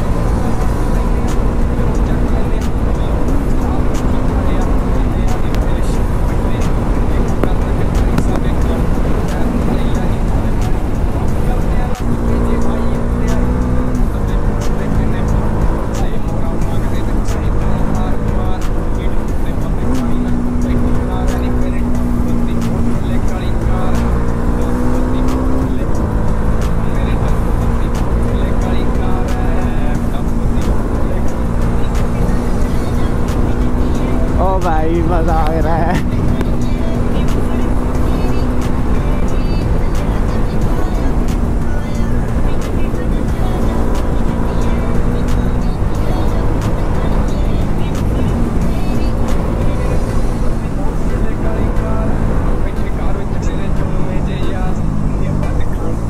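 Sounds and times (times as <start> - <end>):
background music: 0.0 - 56.0
motorcycle engine hum: 0.0 - 56.0
wavering singing voice: 0.0 - 56.0
wind rushing over microphone: 0.0 - 56.0.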